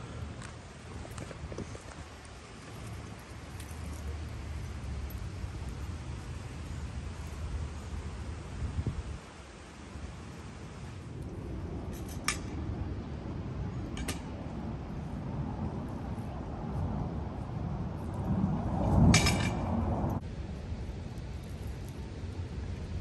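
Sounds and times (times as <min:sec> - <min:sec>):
low outdoor rumble: 0:00.0 - 0:23.0.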